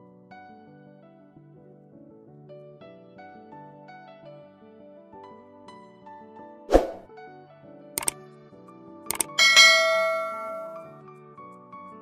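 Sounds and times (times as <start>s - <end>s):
soft background music: 0.0s - 12.0s
sharp clicks: 9.1s - 9.4s
bright bell-like ding: 9.1s - 11.0s.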